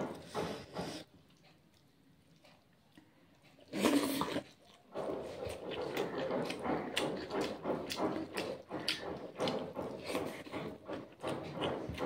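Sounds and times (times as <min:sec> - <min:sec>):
wet chewing and lip-smacking: 0:00.8 - 0:12.0.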